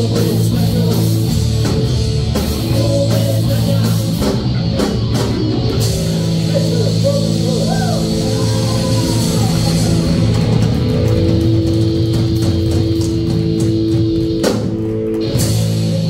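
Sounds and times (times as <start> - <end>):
drums and cymbals: 0.0 - 16.0
electric guitars sustained notes: 0.0 - 16.0
heavy metal band playing live: 0.0 - 16.0.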